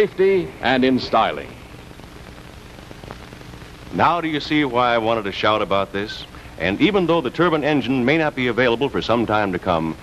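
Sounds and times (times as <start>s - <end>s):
film soundtrack hiss: 0.0s - 10.0s.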